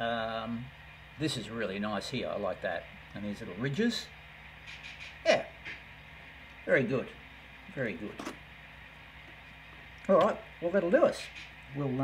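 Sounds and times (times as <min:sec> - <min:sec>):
man speaking: 0:00.0 - 0:04.2, 0:05.2 - 0:05.6, 0:06.6 - 0:08.4, 0:10.1 - 0:12.0
low steady hum: 0:00.0 - 0:12.0.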